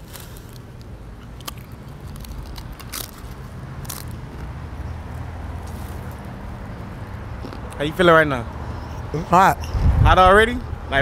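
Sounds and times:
person crunching a chip: 0:00.0 - 0:04.6
steady low rumble: 0:08.7 - 0:11.0.

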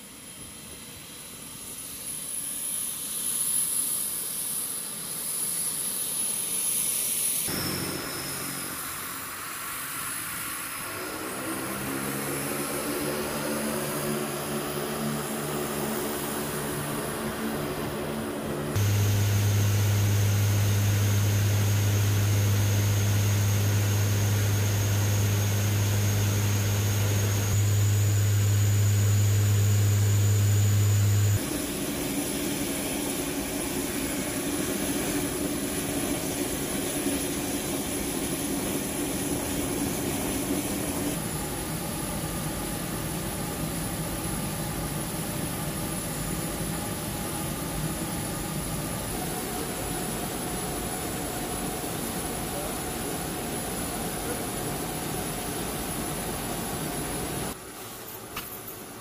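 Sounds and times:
turboprop engines humming: 0:07.5 - 0:42.1
low propeller drone in cabin: 0:07.5 - 0:50.7
engine hum with high whine: 0:07.5 - 0:57.6.

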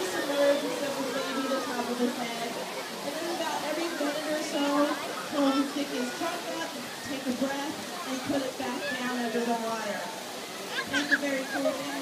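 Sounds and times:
people chattering: 0:00.0 - 0:12.0
waterfall rushing: 0:00.0 - 0:12.0.

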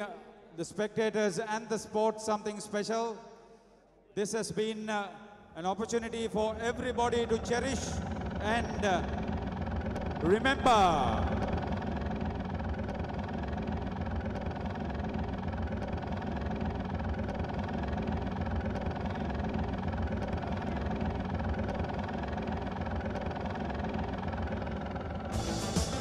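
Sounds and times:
drone propellers humming: 0:06.3 - 0:26.0.

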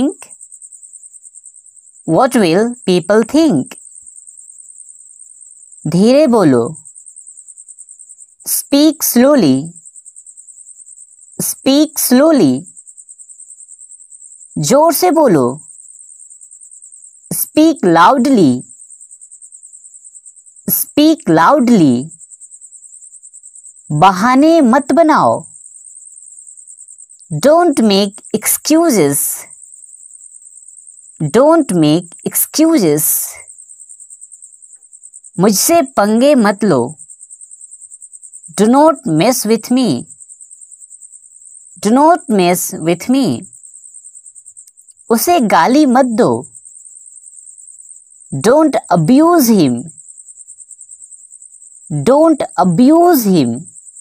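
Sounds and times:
high-pitched insect-like trill: 0:00.0 - 0:54.0.

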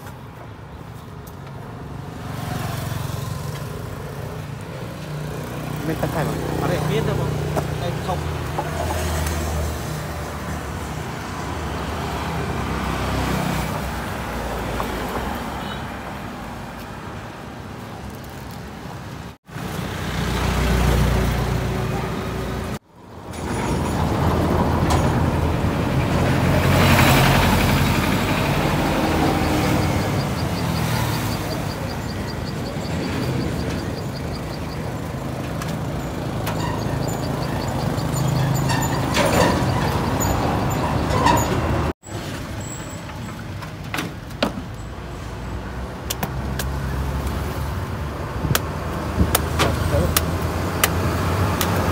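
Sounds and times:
vehicles passing: 0:00.0 - 0:51.9.

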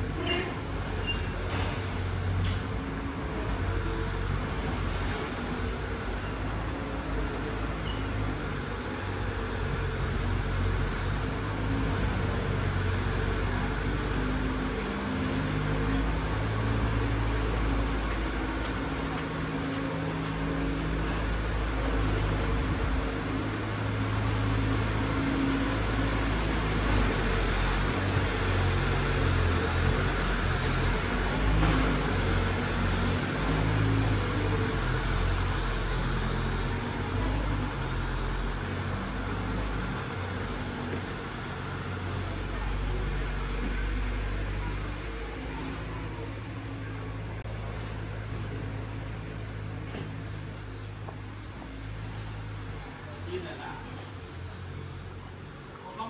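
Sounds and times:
low engine hum: 0:00.0 - 0:53.2
street traffic noise: 0:00.0 - 0:56.0.

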